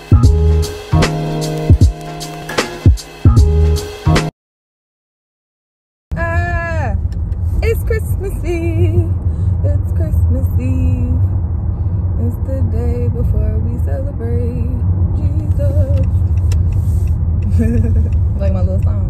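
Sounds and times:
low rumble of car interior: 6.1 - 19.0
woman singing: 7.6 - 9.1, 9.7 - 11.3, 12.2 - 16.1.

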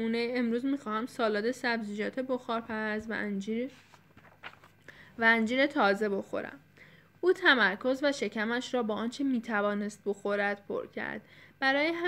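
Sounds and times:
woman reading aloud: 0.0 - 12.0.

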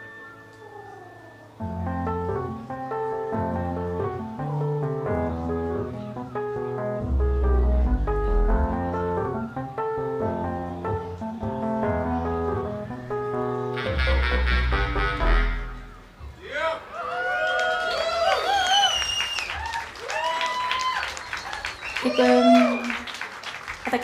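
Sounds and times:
keyboard melody: 0.0 - 16.4
instrumental band music: 1.8 - 16.3
bass line: 6.8 - 9.8, 11.9 - 16.2.

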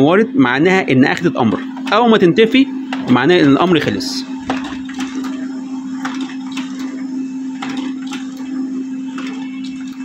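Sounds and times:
laser printer hum: 0.0 - 10.0
printer sheet feed clicks: 1.7 - 2.2, 2.8 - 3.8, 4.4 - 10.0.

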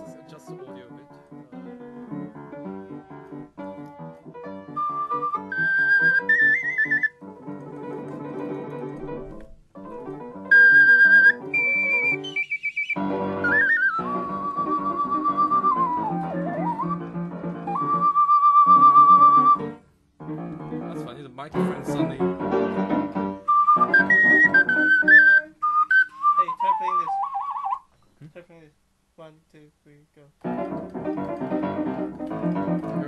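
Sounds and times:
piano accompaniment: 0.0 - 27.8, 30.4 - 33.0
ocarina melody: 3.9 - 19.8, 20.4 - 28.0.

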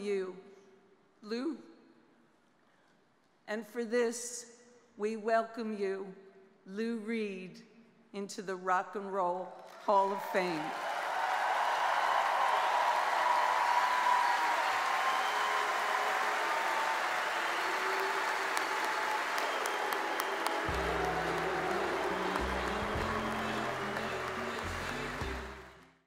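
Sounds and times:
large audience applauding: 9.7 - 26.0.

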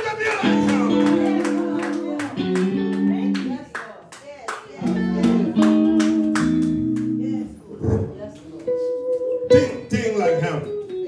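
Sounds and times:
rhythmic hand clapping: 0.0 - 7.5.

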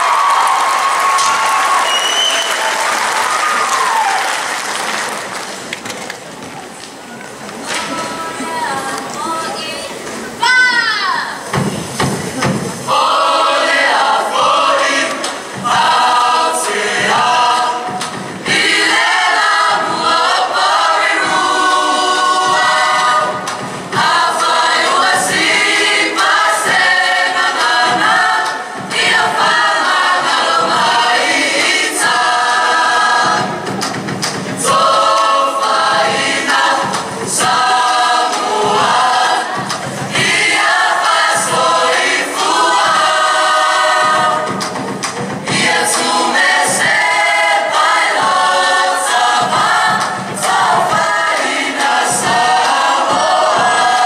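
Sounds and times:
choir of men and women singing: 12.4 - 54.0.

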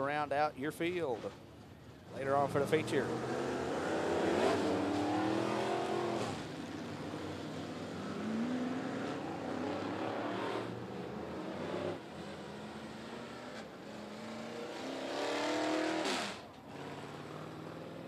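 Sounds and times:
race car engines running: 0.8 - 18.0.

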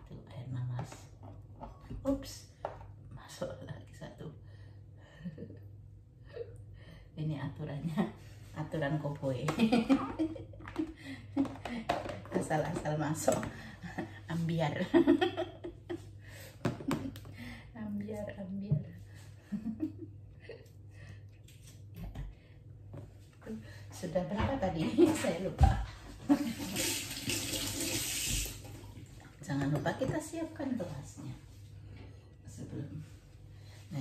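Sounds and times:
faint low hum: 0.0 - 26.8, 28.5 - 34.0
woman chuckling and murmuring: 19.4 - 20.9
kitchen tap running: 26.3 - 29.4.

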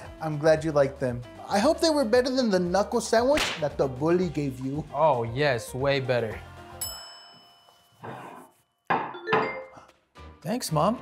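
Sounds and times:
music: 0.0 - 7.9, 9.1 - 11.0.

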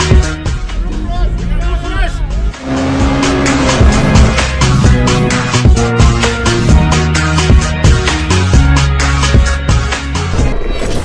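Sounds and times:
sports car engine: 2.5 - 6.7
music with steady beat: 2.5 - 10.1.

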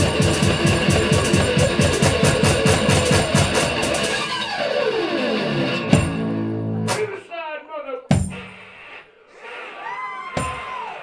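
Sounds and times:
fast kick drum beat: 0.0 - 4.2, 8.1 - 8.5
electric slide guitar: 0.0 - 6.9.

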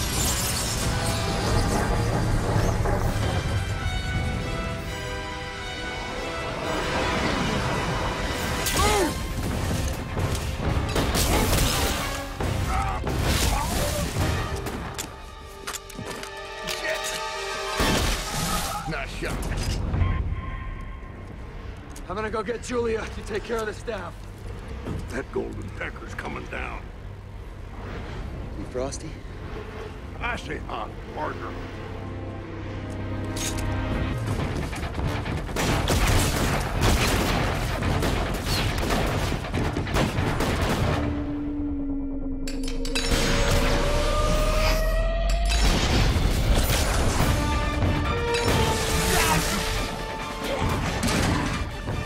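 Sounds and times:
dramatic orchestral score: 0.0 - 52.0
gunshots: 34.3 - 41.2.

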